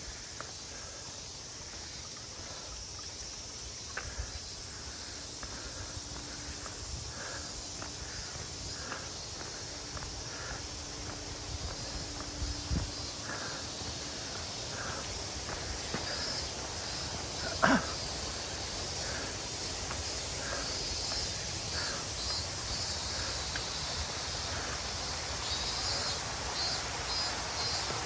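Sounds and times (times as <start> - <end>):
footsteps on paved path: 0.0 - 28.0
insects buzzing: 0.0 - 28.0.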